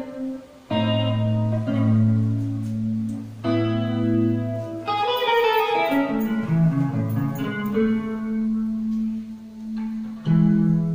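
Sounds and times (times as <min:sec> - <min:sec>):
electric guitar note ringing: 0:00.0 - 0:10.9.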